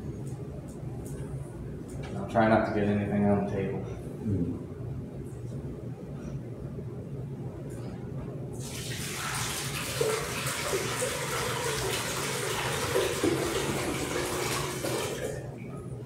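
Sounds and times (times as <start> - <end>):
water pouring into a bowl: 8.6 - 15.4.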